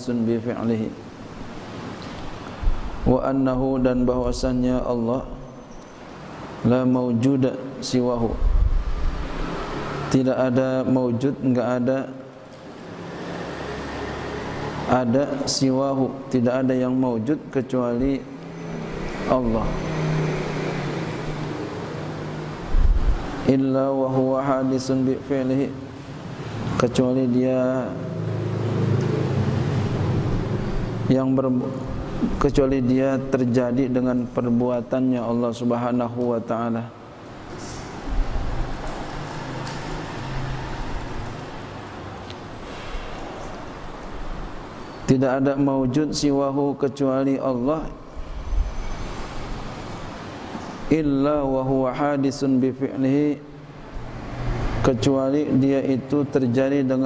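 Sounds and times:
background noise: 0:00.0 - 0:57.0
rushing noise with deep rumble: 0:22.7 - 0:23.4.

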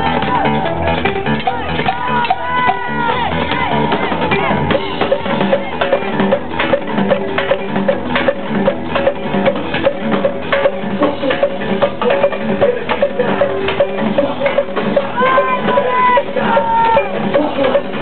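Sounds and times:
bass guitar: 0:00.0 - 0:18.0
drums: 0:00.0 - 0:18.0
electric guitar: 0:00.0 - 0:18.0
hand percussion: 0:00.0 - 0:18.0
knocking percussion rhythm: 0:00.0 - 0:18.0.

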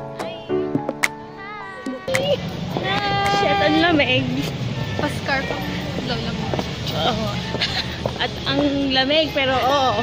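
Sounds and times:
city street rumble: 0:00.0 - 0:10.0
women's voices: 0:01.9 - 0:10.0
women laughing: 0:07.4 - 0:08.1.

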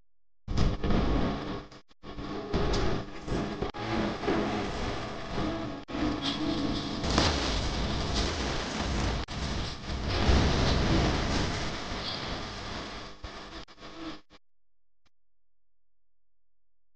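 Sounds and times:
low rumble of thunder: 0:07.0 - 0:13.1
heavy rain hissing: 0:07.0 - 0:13.7.

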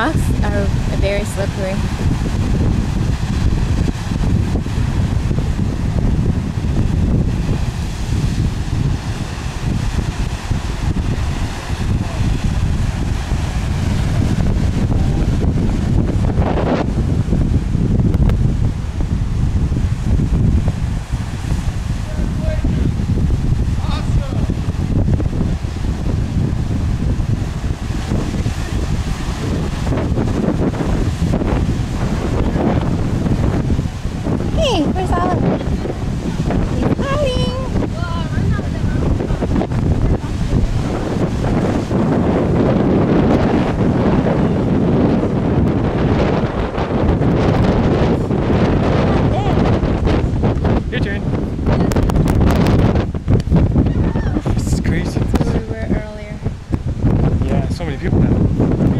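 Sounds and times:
ocean surf breaking on rocks: 0:00.0 - 0:58.9
wind buffeting microphone: 0:00.0 - 0:58.9.

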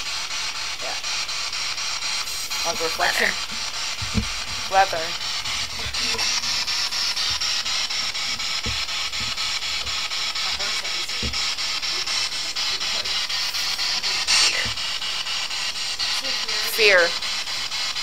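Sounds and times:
loud static hiss: 0:00.0 - 0:18.0
soft low thumps: 0:03.4 - 0:10.2.

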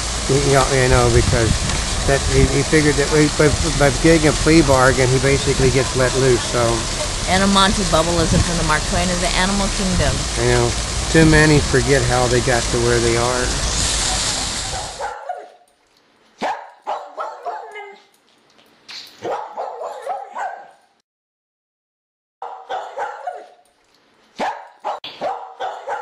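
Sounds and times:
fountain water splashing: 0:00.0 - 0:15.0
dog barking and yipping: 0:14.1 - 0:15.7, 0:16.4 - 0:18.1, 0:19.2 - 0:20.8, 0:22.4 - 0:23.6, 0:24.3 - 0:26.0.

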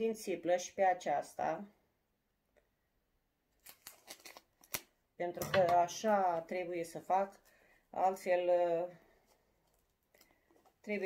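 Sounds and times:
scissors snipping plastic wrap: 0:03.6 - 0:05.8.

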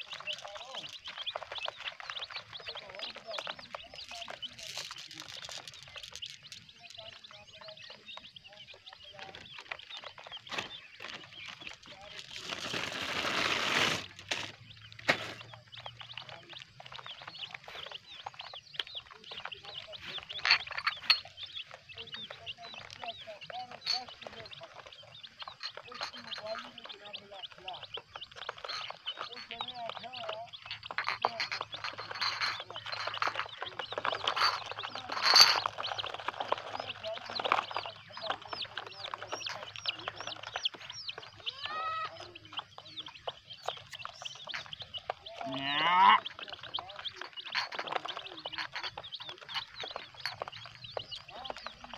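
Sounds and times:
chicks peeping: 0:00.0 - 0:51.9.

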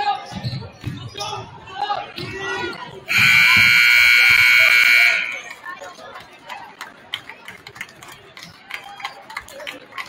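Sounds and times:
scoreboard horn blast: 0:03.1 - 0:05.5.

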